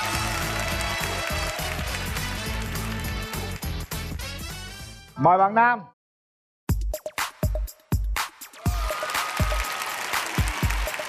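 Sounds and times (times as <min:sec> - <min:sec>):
studio audience applauding: 0:00.0 - 0:04.6, 0:08.5 - 0:11.0
upbeat music with kick drum: 0:00.0 - 0:05.1, 0:06.7 - 0:11.0.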